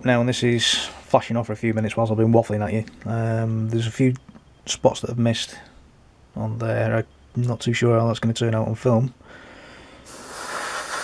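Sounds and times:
airbrush spraying hiss: 10.1 - 11.0.

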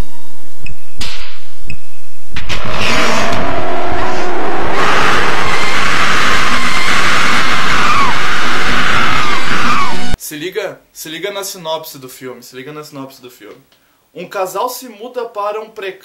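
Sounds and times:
horror film soundtrack: 2.4 - 10.2.

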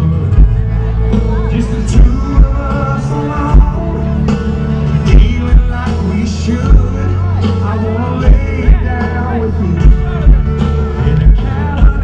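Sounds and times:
electric guitar: 0.0 - 12.0
live country band playing: 0.0 - 12.0.

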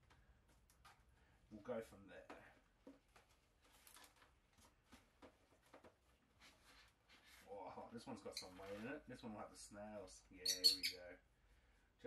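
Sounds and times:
paper and plastic rustling: 3.0 - 7.5.

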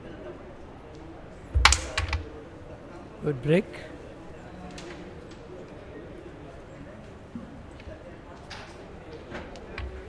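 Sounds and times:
carrom pieces clacking: 1.6 - 2.4, 9.4 - 10.0
carrom striker crack: 1.6 - 2.4, 9.5 - 10.0.

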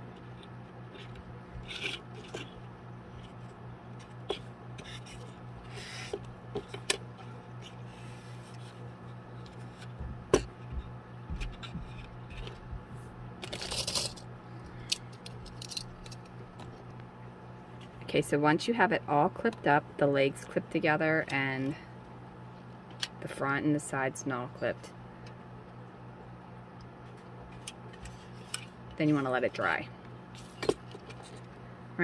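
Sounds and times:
rubbing and scraping of handling: 0.0 - 10.7, 27.0 - 29.6
steady low hum: 0.0 - 32.0.

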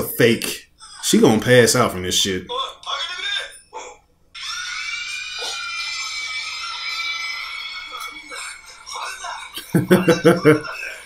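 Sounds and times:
high-pitched female scream: 4.4 - 8.3.

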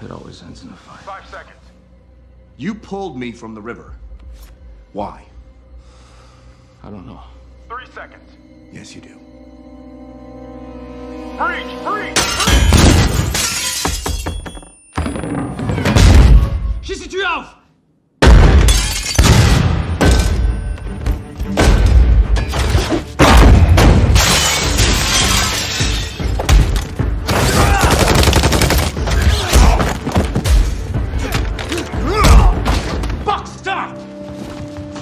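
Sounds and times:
film music score: 0.0 - 35.0
window glass shattering: 12.2 - 14.7, 18.5 - 20.4, 24.0 - 27.9
rapid gunfire: 27.6 - 29.0.

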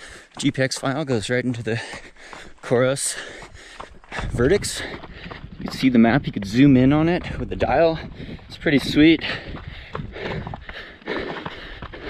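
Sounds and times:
running footsteps on gravel trail: 0.0 - 12.0.

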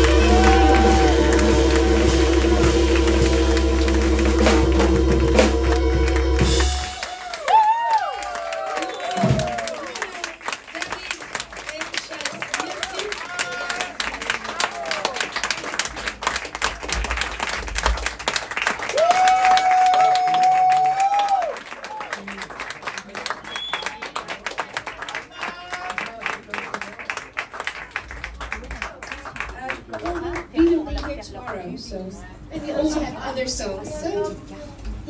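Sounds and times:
voice holding long note: 0.0 - 7.3
audience applauding: 0.0 - 31.6.

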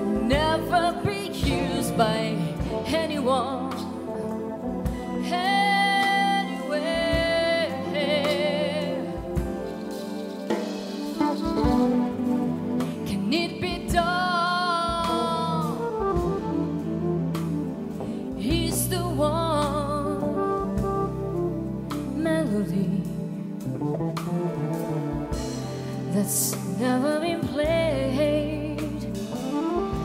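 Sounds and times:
jazz fusion band playing: 0.0 - 30.0.

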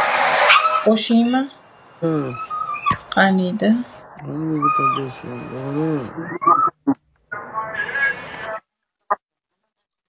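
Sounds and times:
person's drawn-out voice: 4.2 - 6.4.

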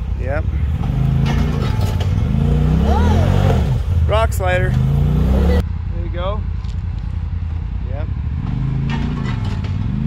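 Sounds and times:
utv engine revving: 0.5 - 5.6, 8.3 - 10.0.

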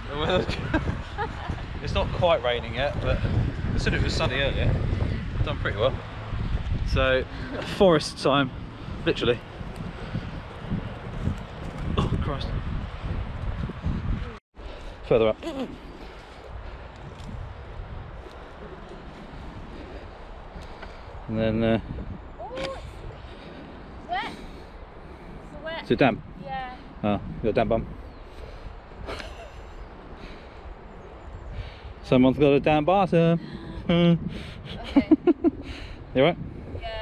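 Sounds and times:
wind buffeting microphone: 0.0 - 37.0
short breathy laugh: 29.0 - 29.7.

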